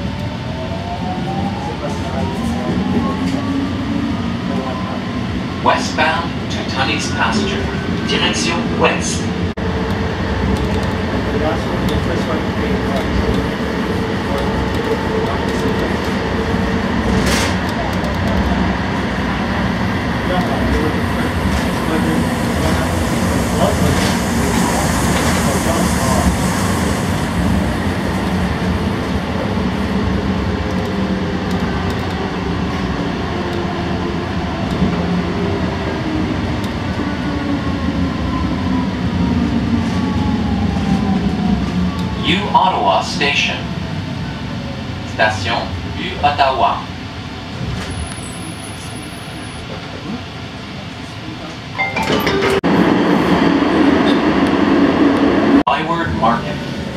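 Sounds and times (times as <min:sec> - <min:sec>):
train wheels rumbling on rail: 0:00.0 - 0:51.7.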